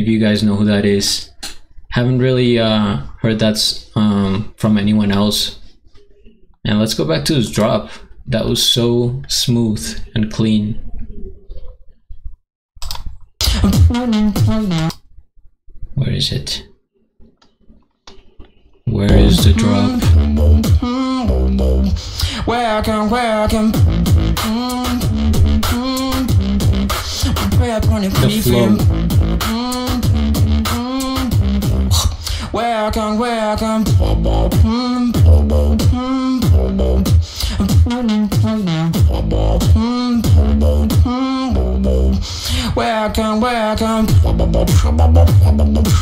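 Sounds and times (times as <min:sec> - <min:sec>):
vocal beatbox: 0:13.4 - 0:14.9, 0:19.1 - 0:21.2, 0:23.5 - 0:32.9, 0:33.6 - 0:42.8, 0:43.8 - 0:46.0
pitched vocal line: 0:19.1 - 0:20.4, 0:28.1 - 0:29.0.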